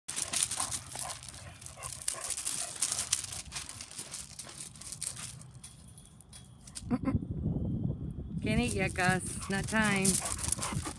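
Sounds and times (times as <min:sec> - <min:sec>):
dog paws crunching gravel: 0:00.1 - 0:06.8, 0:08.5 - 0:10.9.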